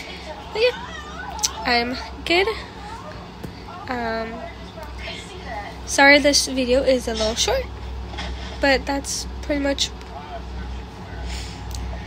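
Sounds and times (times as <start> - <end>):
low background rumble: 0.0 - 12.0
soft breath: 11.2 - 11.8.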